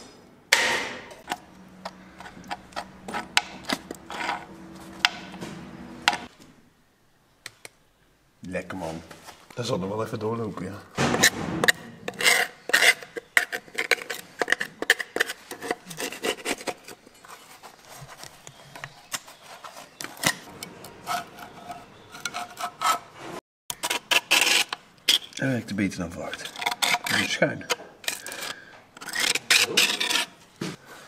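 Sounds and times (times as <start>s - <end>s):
metal scraper scraping sludge off metal: 1.2s - 6.3s, 20.2s - 25.4s, 26.4s - 30.4s.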